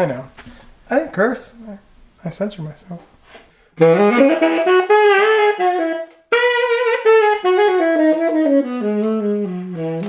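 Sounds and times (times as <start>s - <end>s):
tenor saxophone: 3.8s - 10.0s.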